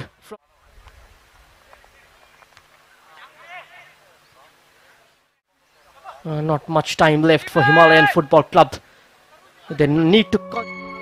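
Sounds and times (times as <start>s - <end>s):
distant players shouting: 3.0s - 4.6s, 7.2s - 9.7s.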